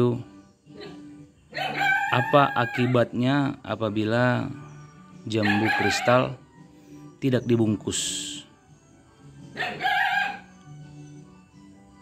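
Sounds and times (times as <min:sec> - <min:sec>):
background music: 0:00.0 - 0:12.0
rooster crowing: 0:01.5 - 0:03.1, 0:05.4 - 0:06.2, 0:09.6 - 0:10.6.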